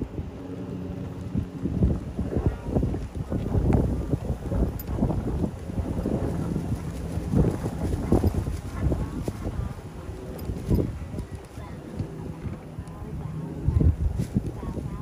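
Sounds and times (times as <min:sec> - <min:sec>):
golf cart running rumble: 0:00.0 - 0:15.0
wind buffeting microphone: 0:00.0 - 0:15.0.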